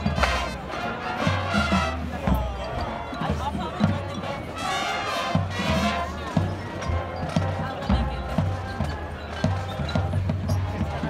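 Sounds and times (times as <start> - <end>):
crowd voices: 0.0 - 11.0
marching band drums: 0.0 - 11.0.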